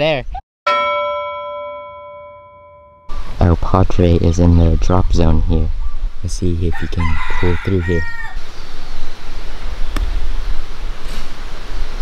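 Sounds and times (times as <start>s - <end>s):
rooster crowing: 6.7s - 8.5s.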